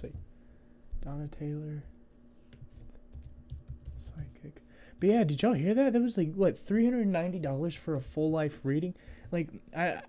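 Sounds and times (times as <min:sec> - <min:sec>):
laptop keyboard typing: 0:03.1 - 0:04.2.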